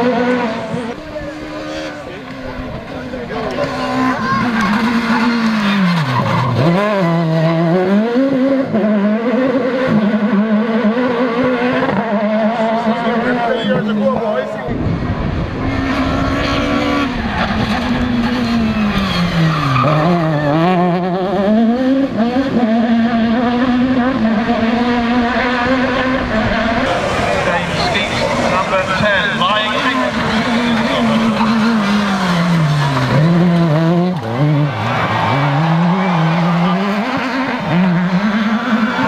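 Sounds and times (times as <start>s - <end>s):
rally car engine revving: 0.0s - 39.0s.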